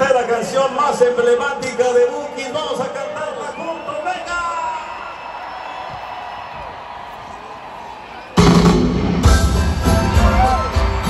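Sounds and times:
crowd voices and shouts: 0.0 - 11.0
live band playing: 8.4 - 11.0.

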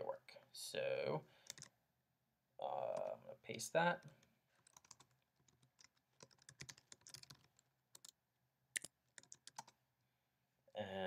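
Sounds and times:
faint typing on keyboard: 1.4 - 1.7, 2.9 - 9.8.

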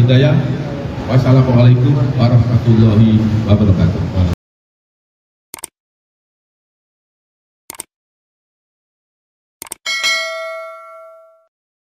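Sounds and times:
bell-like chime: 9.9 - 11.5.

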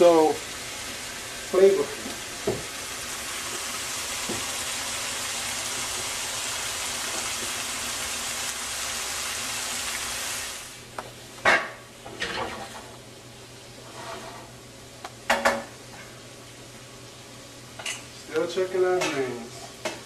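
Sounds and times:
vegetables sizzling in oil: 0.0 - 20.0
metal pots and pans clanking: 11.5 - 12.9.

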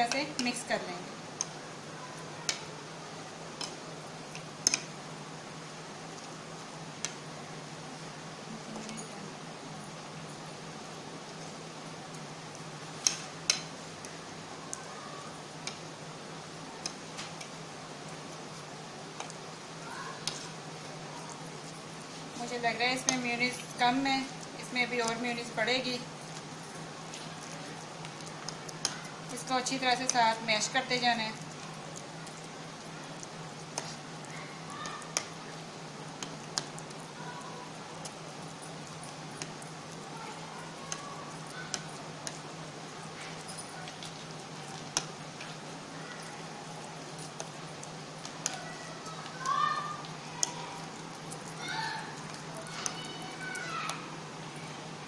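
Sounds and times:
fork mashing egg on a plate: 12.5 - 14.9, 20.0 - 20.6, 26.3 - 30.4, 31.3 - 35.4, 36.2 - 45.6, 46.4 - 54.1
fork clicking against plate: 41.7 - 42.4.

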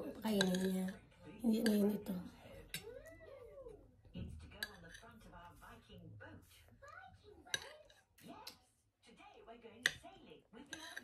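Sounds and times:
utensil clinking against dish: 0.0 - 3.0, 10.7 - 11.0.

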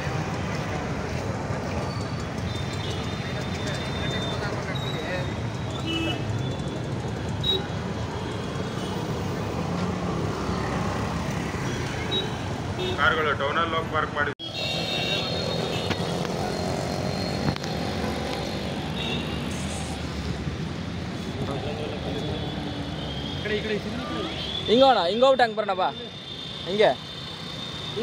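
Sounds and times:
passing cars: 0.0 - 28.0
vehicle horn: 14.4 - 16.0.

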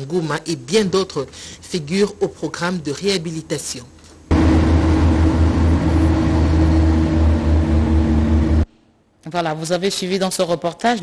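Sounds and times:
diesel engine running loud: 4.3 - 8.7.

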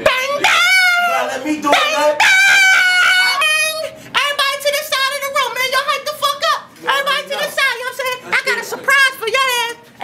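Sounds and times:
high-pitched wailing voice: 0.0 - 3.9.

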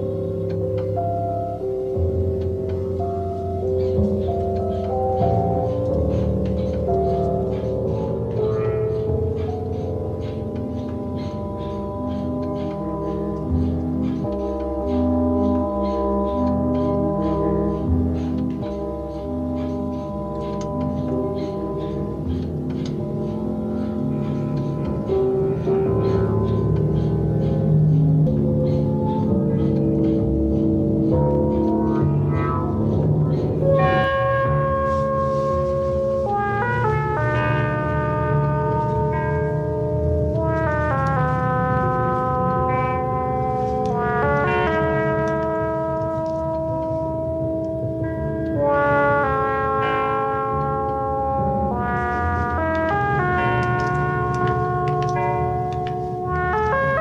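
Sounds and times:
slow sustained film score tones: 0.0 - 57.0.

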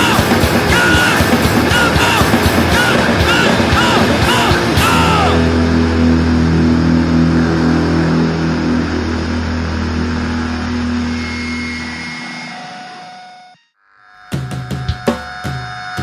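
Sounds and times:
bass guitar: 0.0 - 12.6
distorted guitar chord ringing: 0.0 - 14.4
high feedback tone: 0.0 - 16.0.

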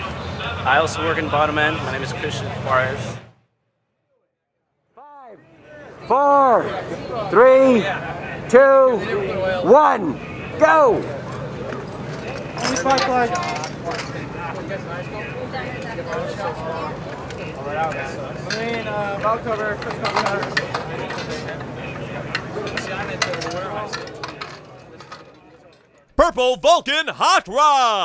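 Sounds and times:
people talking and calling out: 26.1 - 28.0.

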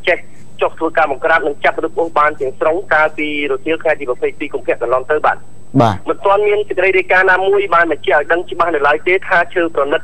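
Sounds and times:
narrator voice-over: 5.8 - 6.1.

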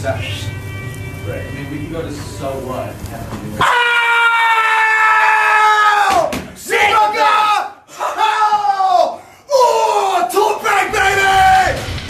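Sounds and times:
person screaming: 3.6 - 6.3, 6.9 - 10.3.

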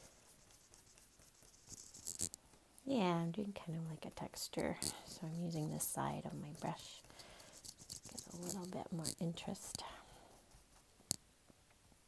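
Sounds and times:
paintbrush scrubbing on paper: 0.0 - 11.0
woman talking: 2.9 - 7.1, 8.1 - 10.2.

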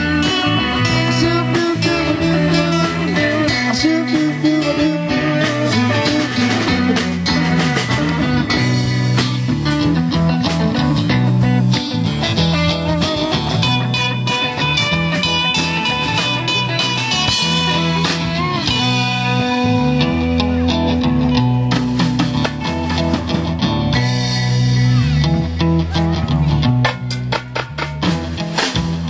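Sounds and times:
drum kit: 0.0 - 29.0
funk band playing: 0.0 - 29.0
guitars: 0.0 - 29.0.

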